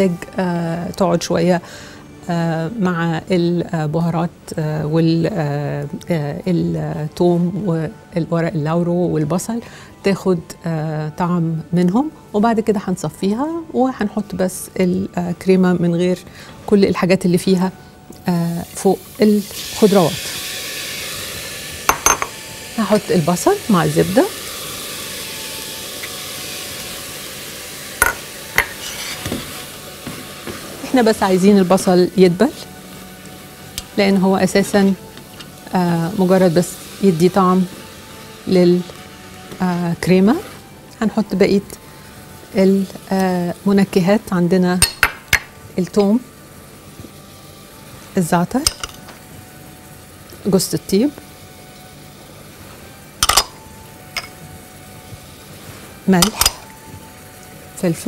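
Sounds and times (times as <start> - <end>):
onion sizzling in butter: 18.3 - 58.0
utensils knocking on saucepan: 21.9 - 22.4, 28.0 - 30.6, 56.2 - 56.7.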